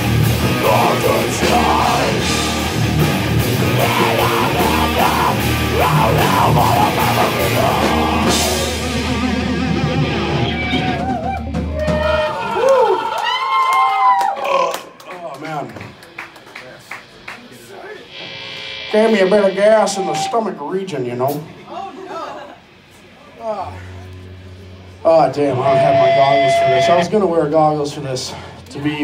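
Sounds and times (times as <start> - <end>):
heavy metal band playing: 0.0 - 12.4, 18.0 - 21.7, 23.7 - 28.2
amplifier electric buzz: 16.2 - 22.1, 24.1 - 27.4
man talking: 18.9 - 21.6, 25.0 - 29.0.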